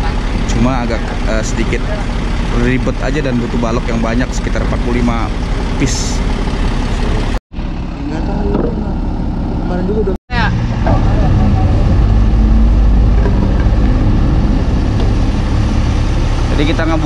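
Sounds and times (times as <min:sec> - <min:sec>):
crew voices: 0:00.0 - 0:09.1
heavy diesel engine running: 0:00.0 - 0:17.0.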